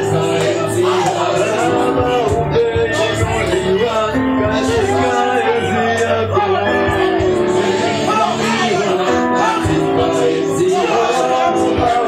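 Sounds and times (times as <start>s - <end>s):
worship music singing: 0.0s - 12.0s.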